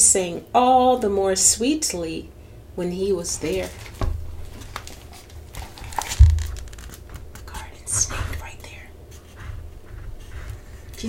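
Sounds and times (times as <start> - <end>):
paper rustling: 3.4 - 7.6
book dull thump: 6.0 - 6.6.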